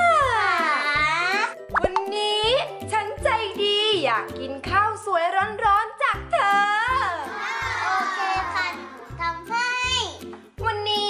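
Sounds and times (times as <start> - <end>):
children's background music: 0.0 - 11.0
child talking: 0.4 - 1.5, 7.3 - 11.0
plop sound effect: 1.7 - 2.1.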